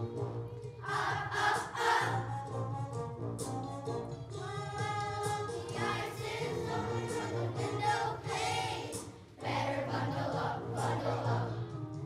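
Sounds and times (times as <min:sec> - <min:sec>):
instrumental accompaniment: 0:00.0 - 0:12.0
children's choir singing: 0:00.7 - 0:02.3, 0:04.8 - 0:11.7.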